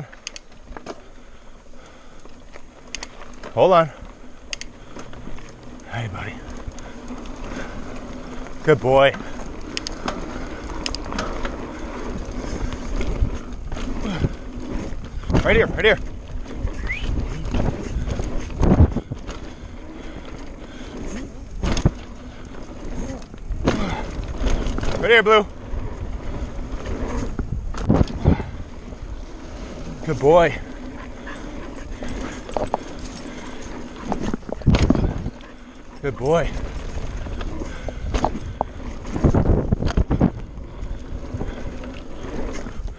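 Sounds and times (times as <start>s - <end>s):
bike rattling and knocking: 0.0s - 42.9s
tyres rumbling on dirt: 0.0s - 42.9s
wind on microphone: 12.1s - 19.4s, 25.6s - 32.8s, 34.0s - 35.4s, 36.5s - 42.9s.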